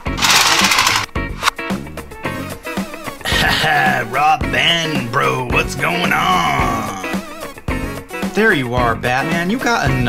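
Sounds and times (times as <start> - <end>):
toy car rattling whirr: 0.0 - 1.1
background music: 0.0 - 10.0.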